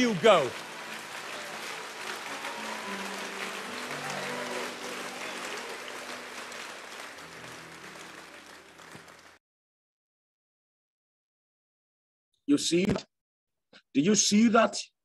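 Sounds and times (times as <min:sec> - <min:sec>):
congregation applauding: 0:00.0 - 0:09.4.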